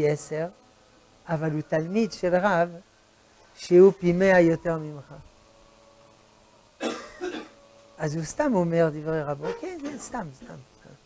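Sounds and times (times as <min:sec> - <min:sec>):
man clearing his throat: 0:06.8 - 0:07.6.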